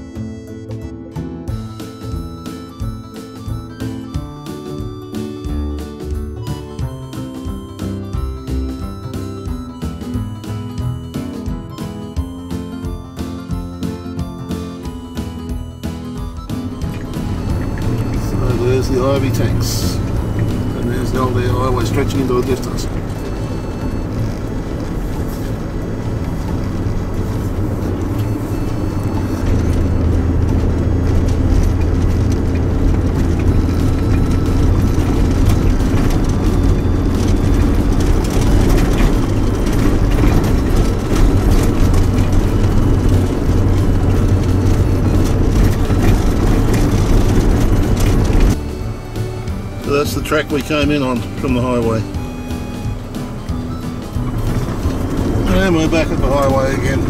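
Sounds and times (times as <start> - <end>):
engine and tyre rumble: 0.0 - 57.0
knocks and rattles from bumps: 1.5 - 57.0.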